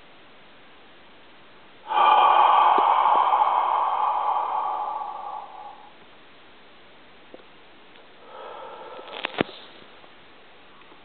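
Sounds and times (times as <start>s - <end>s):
person exhaling loudly: 1.8s - 6.0s, 8.2s - 9.7s.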